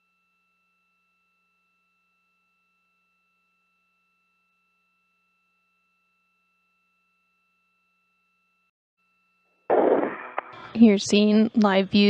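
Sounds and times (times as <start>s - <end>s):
radio static burst: 9.7s - 10.9s.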